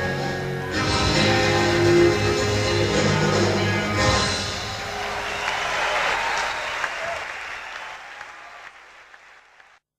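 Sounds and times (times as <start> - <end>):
song ending: 0.0 - 6.8
audience applauding: 4.6 - 9.9.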